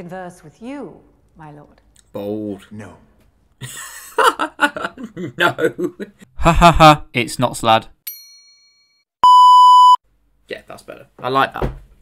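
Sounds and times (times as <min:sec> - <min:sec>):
censor bleep: 0:09.2 - 0:10.0.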